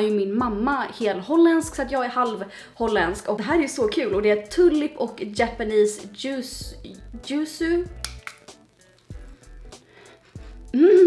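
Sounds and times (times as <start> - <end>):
woman speaking: 0.0 - 8.0
background music: 0.0 - 11.0
small bottle clicks: 8.0 - 8.5.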